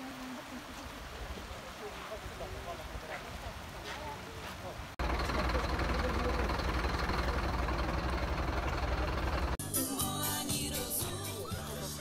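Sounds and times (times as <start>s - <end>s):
vehicle engine rumbling: 4.8s - 9.6s
music: 9.6s - 12.0s.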